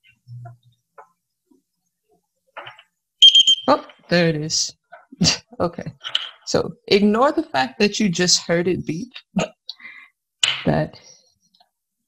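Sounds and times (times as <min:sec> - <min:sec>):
short high-pitched buzzer beep: 0:03.2 - 0:03.8.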